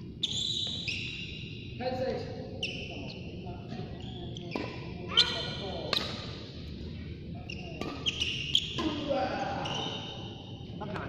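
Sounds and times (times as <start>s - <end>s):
shoes squeaking on court: 0.2s - 1.6s, 2.6s - 6.1s, 7.4s - 10.2s
racket hitting shuttlecock: 5.8s - 6.3s.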